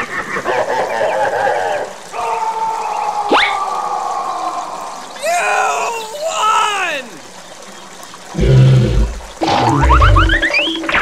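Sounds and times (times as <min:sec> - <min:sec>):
wavering voice-like oh: 0:05.2 - 0:07.2.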